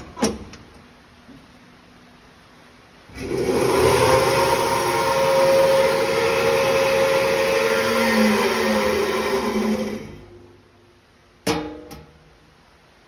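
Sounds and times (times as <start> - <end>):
bandsaw whirring: 3.2 - 10.4.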